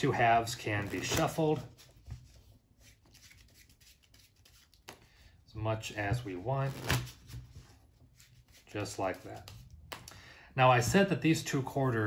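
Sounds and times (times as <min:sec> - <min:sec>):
playing cards rustling and clicking: 0:00.4 - 0:05.2, 0:06.0 - 0:10.2.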